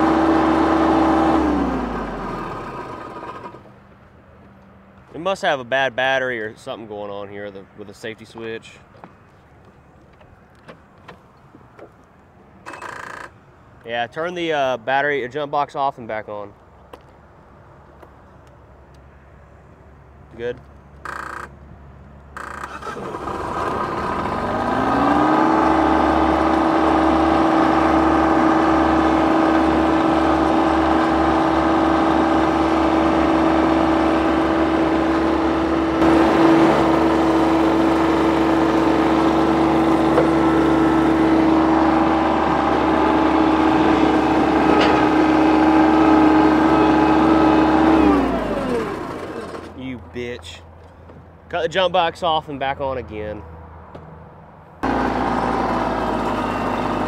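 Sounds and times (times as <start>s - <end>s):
tractor engine revving: 0.0s - 3.8s, 22.4s - 50.0s, 54.8s - 57.0s
steady whine: 25.8s - 45.7s.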